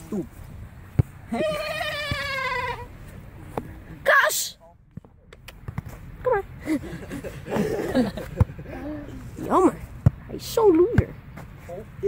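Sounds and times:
boy shouting: 0:04.0 - 0:04.6.

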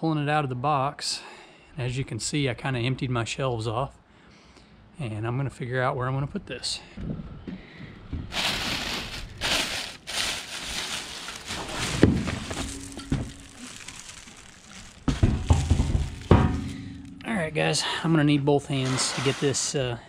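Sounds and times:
heavy thumps: 0:08.1 - 0:17.3
cardboard box flaps rustling: 0:08.3 - 0:13.4
plastic wrapping crinkling: 0:08.3 - 0:16.8.

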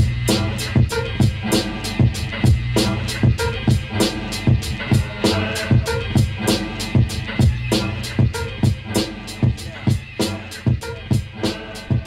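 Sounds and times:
hip hop drum beat: 0:00.0 - 0:12.0
sustained bass line: 0:00.0 - 0:12.0.

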